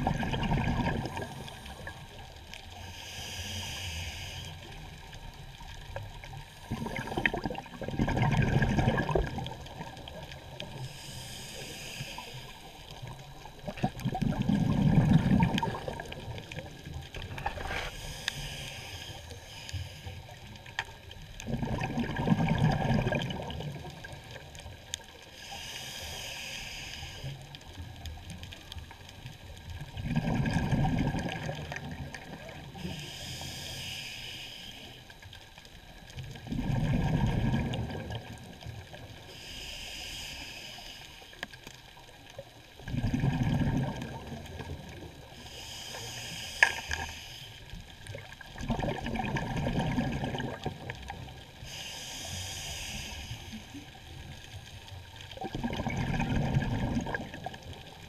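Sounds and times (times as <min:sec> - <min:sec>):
gurgling exhaled bubbles: 0:00.0 - 0:02.2, 0:04.7 - 0:11.2, 0:12.9 - 0:18.0, 0:20.9 - 0:24.8, 0:29.5 - 0:33.0, 0:36.2 - 0:39.2, 0:42.7 - 0:45.5, 0:47.9 - 0:51.6, 0:53.6 - 0:58.0
regulator hissing inhale: 0:01.1 - 0:05.1, 0:10.7 - 0:13.2, 0:17.6 - 0:20.7, 0:25.0 - 0:27.8, 0:32.6 - 0:35.7, 0:39.0 - 0:42.1, 0:44.9 - 0:47.9, 0:51.5 - 0:55.3.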